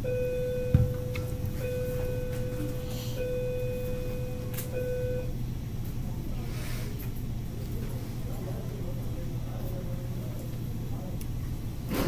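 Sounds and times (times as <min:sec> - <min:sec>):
steady tone: 0:00.0 - 0:05.3
steady low hum: 0:00.0 - 0:12.0
thump: 0:00.7 - 0:01.1.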